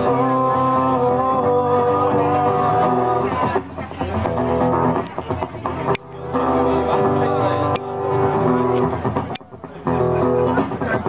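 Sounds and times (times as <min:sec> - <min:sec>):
band music with guitar: 0:00.0 - 0:11.0.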